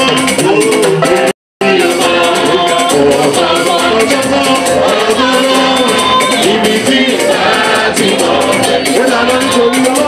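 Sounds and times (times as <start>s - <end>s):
shaker percussion: 0.0s - 10.0s
group singing gospel: 0.6s - 10.0s.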